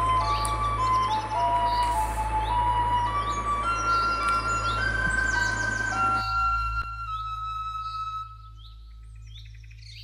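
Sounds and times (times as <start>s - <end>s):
held flute-like note: 0.0s - 8.8s
bird-like chirps: 0.0s - 10.0s
steady low hum: 0.0s - 10.0s.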